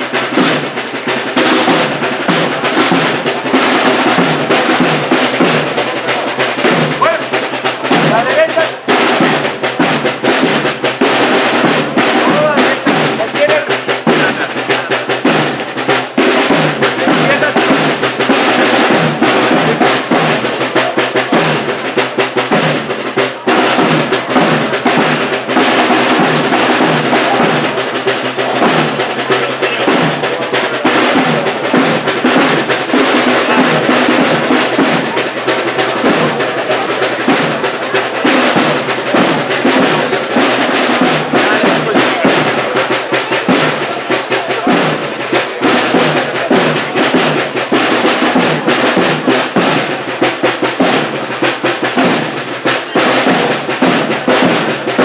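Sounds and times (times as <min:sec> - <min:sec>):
bass drum beat: 0:00.0 - 0:55.0
brass band march: 0:00.0 - 0:55.0
snare drum rolls: 0:00.0 - 0:55.0.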